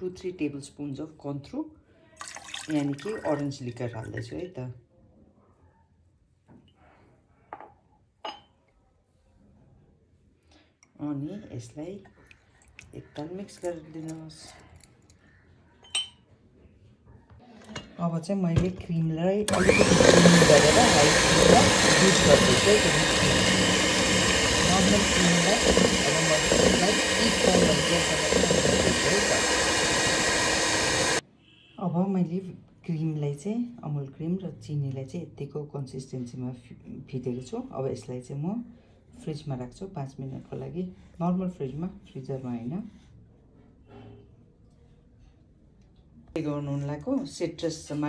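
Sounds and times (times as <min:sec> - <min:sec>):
electric hand mixer whipping cream: 0:19.5 - 0:31.2.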